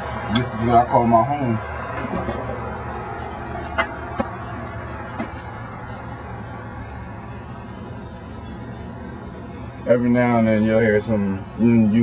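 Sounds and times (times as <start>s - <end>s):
distant traffic hum: 0.0s - 12.0s.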